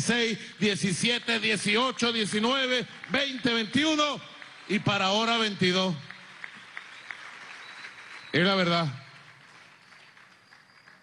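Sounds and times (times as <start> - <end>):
man's voice: 0.0 - 6.0.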